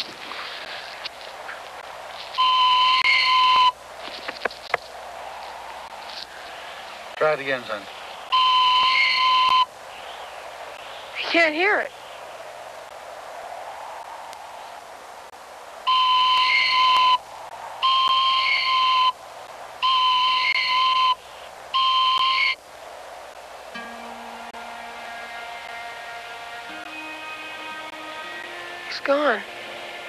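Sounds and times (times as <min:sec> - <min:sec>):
wooden whistle blasts: 0:08.3 - 0:09.7, 0:15.9 - 0:17.2, 0:17.8 - 0:19.2, 0:19.8 - 0:21.2, 0:21.8 - 0:22.6
soft music: 0:23.7 - 0:30.0.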